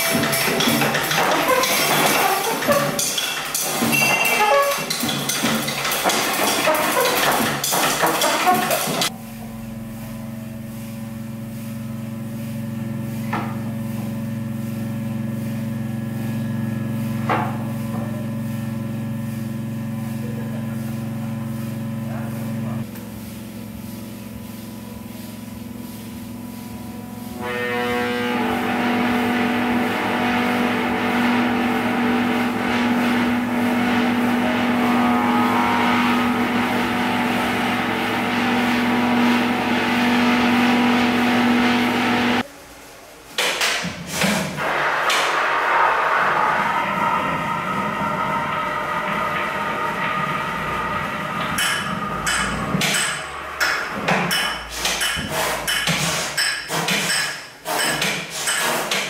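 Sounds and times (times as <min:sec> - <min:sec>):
low drone tones: 0:26.8 - 0:42.4, 0:44.6 - 0:54.3.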